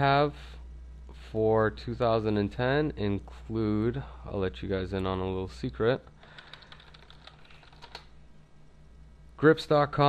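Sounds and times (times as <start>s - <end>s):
faint steady hum: 0.0s - 10.0s
computer keyboard keystrokes: 6.2s - 8.1s.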